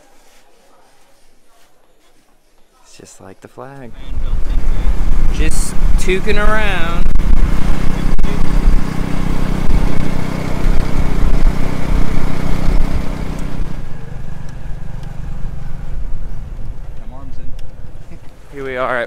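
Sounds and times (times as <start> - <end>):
motorcycle engine running: 4.2 - 18.1.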